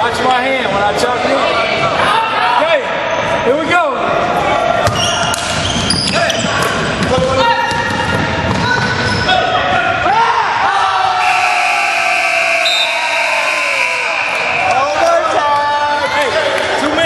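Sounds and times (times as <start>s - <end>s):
players shouting: 4.4s - 16.4s
basketball bouncing on wooden floor: 6.4s - 9.0s.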